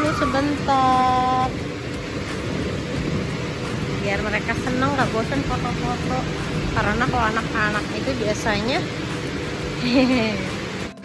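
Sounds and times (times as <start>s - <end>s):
electric air blower running: 0.0s - 11.0s.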